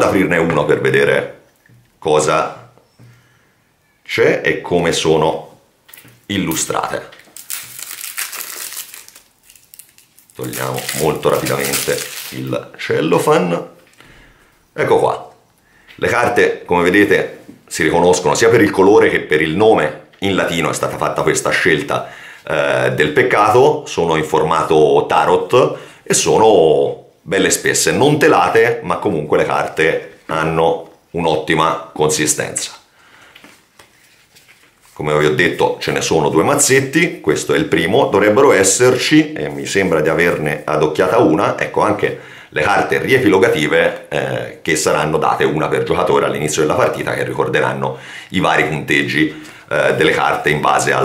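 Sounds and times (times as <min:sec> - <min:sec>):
playing cards rustling and clicking: 0:05.9 - 0:12.5
cellophane crinkling: 0:05.9 - 0:12.8.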